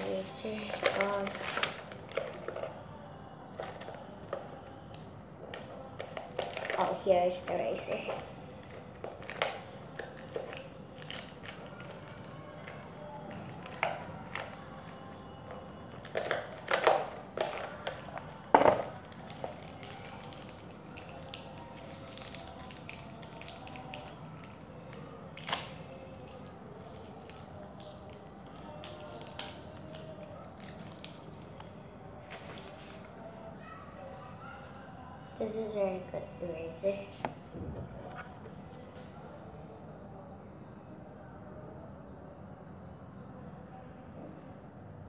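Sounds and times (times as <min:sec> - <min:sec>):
faint background music: 0:00.0 - 0:45.0.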